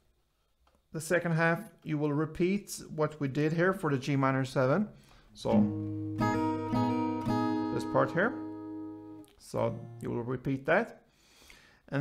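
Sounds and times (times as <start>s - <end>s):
acoustic guitar strums: 5.0s - 10.2s.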